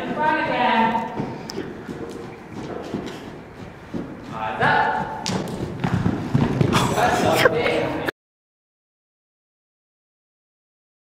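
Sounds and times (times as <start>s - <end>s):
horse hoofbeats on soft dirt: 0.0s - 7.4s
person speaking: 6.8s - 8.1s.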